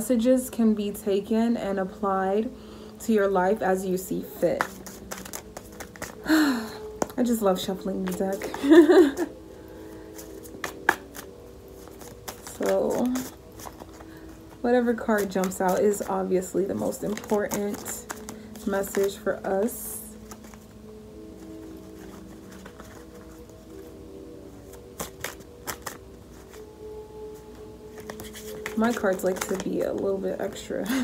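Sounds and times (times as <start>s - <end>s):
soft background music: 0.0s - 31.0s
cards being shuffled: 4.4s - 6.3s, 6.9s - 9.3s, 10.0s - 20.7s, 21.4s - 23.9s, 24.5s - 26.7s, 27.4s - 30.1s.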